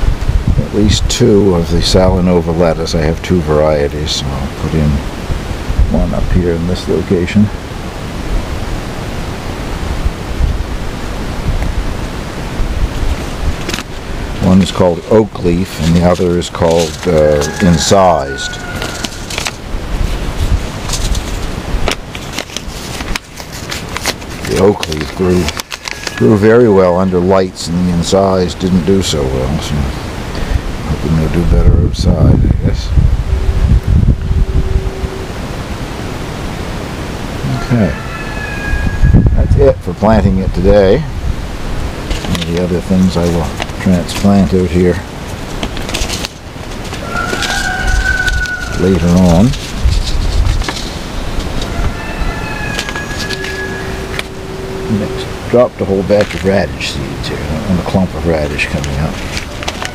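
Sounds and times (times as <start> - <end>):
faint steady hum: 0.0 - 38.0, 38.9 - 59.9
outdoor hiss: 0.0 - 38.9, 39.5 - 59.9
wind rumbling on microphone: 0.0 - 59.9
paper packets crackling: 13.1 - 27.1, 42.0 - 54.4, 55.0 - 59.9
distant rooster crowing: 16.7 - 19.7, 25.9 - 26.7, 37.4 - 39.5, 46.9 - 49.5, 51.3 - 55.5.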